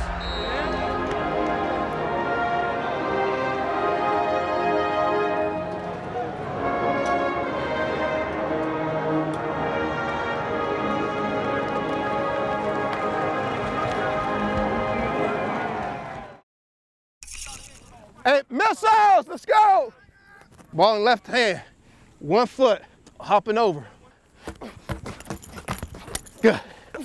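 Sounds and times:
many voices singing together: 0:06.7 - 0:11.5.

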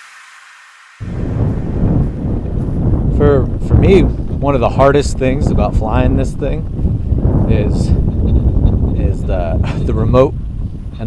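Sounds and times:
faint hiss: 0:00.0 - 0:01.1
wind noise on microphone: 0:00.0 - 0:11.0.

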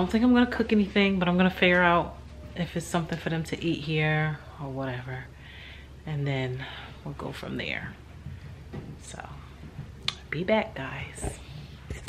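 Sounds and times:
low room hum: 0:00.0 - 0:12.0
woman speaking softly: 0:10.2 - 0:11.4.

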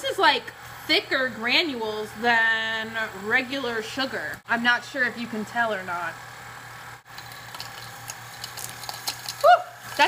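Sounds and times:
cotton candy maker motor hum: 0:00.0 - 0:10.0.

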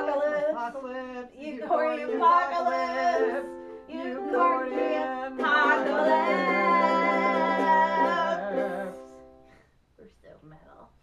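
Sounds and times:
ukulele strumming: 0:00.0 - 0:09.4.

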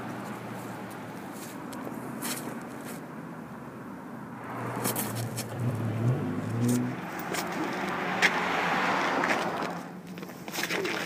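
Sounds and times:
car driving past: 0:04.4 - 0:10.0
tyre noise: 0:04.4 - 0:11.0.

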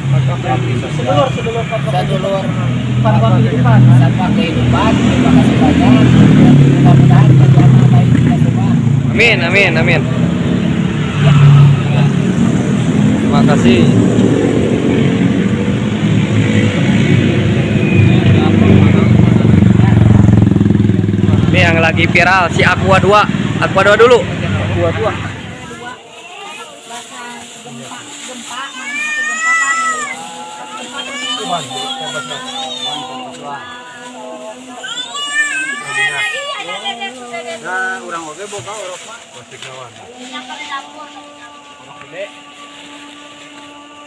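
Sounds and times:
people talking: 0:00.0 - 0:10.2, 0:11.1 - 0:20.4, 0:21.4 - 0:42.6
motorcycle engine running: 0:00.0 - 0:26.0.

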